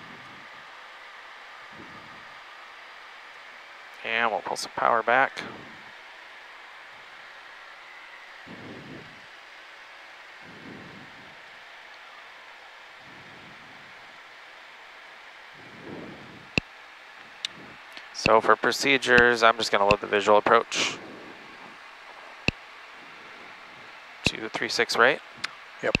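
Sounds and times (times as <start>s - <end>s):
jet engine noise: 0.0s - 3.0s, 4.0s - 6.8s, 7.4s - 14.4s, 17.2s - 26.0s
airflow hiss in cabin: 0.0s - 26.0s
sharp clicks: 25.4s - 26.0s.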